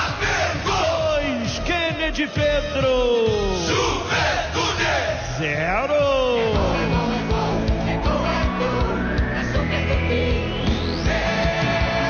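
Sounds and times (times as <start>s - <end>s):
crowd noise: 3.2s - 12.0s.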